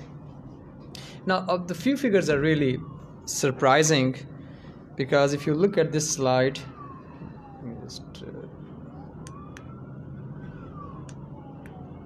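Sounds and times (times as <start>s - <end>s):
siren wailing faintly: 0.0s - 12.0s.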